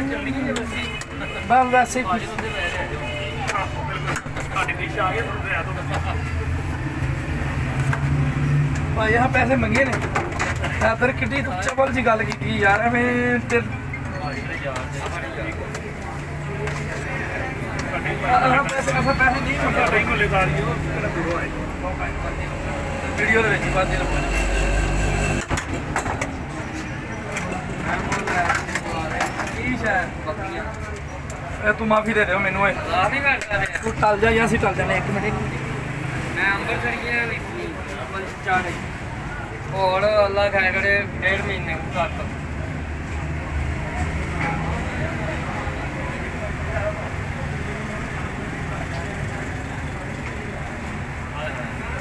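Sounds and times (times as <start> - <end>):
indistinct voices talking: 0.0 - 52.0
low rumble of traffic: 0.0 - 52.0.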